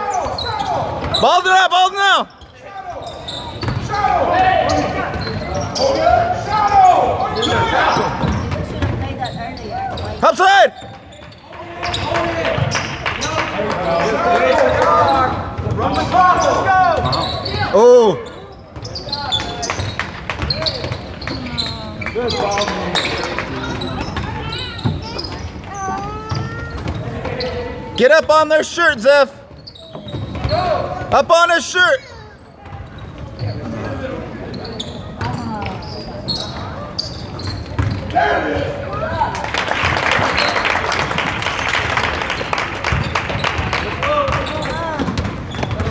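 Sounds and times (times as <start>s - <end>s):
sneaker squeaks: 0.0s - 1.5s, 2.3s - 39.4s, 40.2s - 45.9s
voices calling out: 0.0s - 45.9s
basketball bouncing on hardwood floor: 37.6s - 38.0s.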